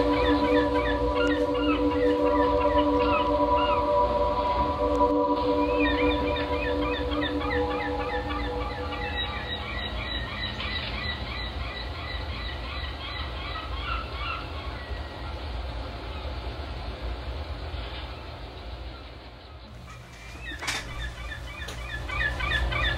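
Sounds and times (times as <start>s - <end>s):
rapid chirping calls: 0.0s - 4.0s, 5.4s - 15.4s, 19.9s - 22.9s
steady low rumble: 0.0s - 20.2s.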